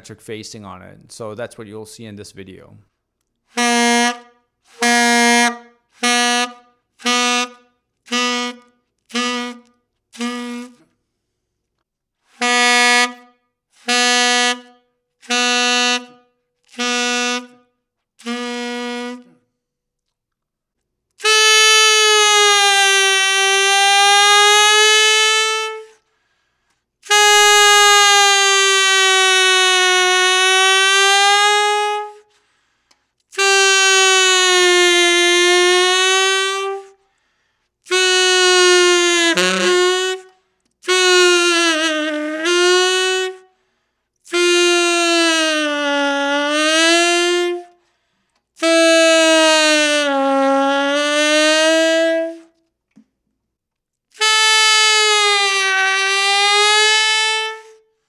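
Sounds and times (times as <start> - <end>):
tenor saxophone bending notes: 3.4 - 11.0, 12.2 - 19.4, 21.2 - 26.0, 27.0 - 32.4, 33.2 - 37.0, 37.8 - 43.5, 44.2 - 47.8, 48.6 - 52.6, 54.1 - 57.9
player breathing: 32.3 - 33.2, 37.0 - 37.8.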